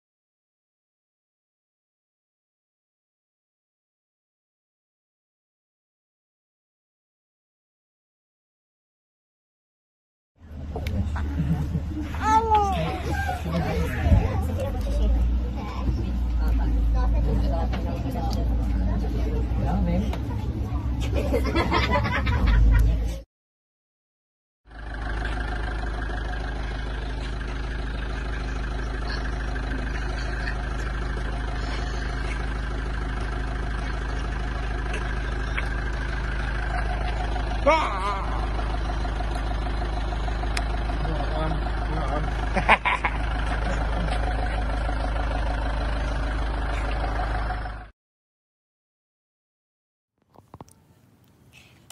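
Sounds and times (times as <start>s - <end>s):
road noise: 10.4s - 23.2s, 24.7s - 47.9s, 50.3s - 51.9s
bus engine rumble: 10.4s - 23.3s, 24.7s - 47.9s, 50.3s - 51.9s
voices: 10.5s - 23.2s, 25.1s - 47.1s.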